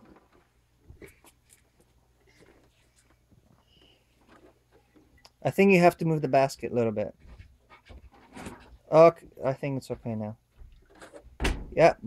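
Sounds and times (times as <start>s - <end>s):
dryer door clicks and rustles: 10.9s - 11.8s.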